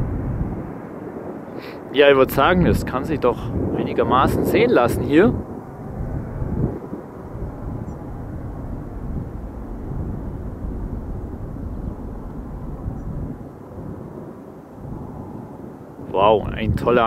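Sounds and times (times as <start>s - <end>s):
distant jet engine rumble: 0.0s - 17.0s.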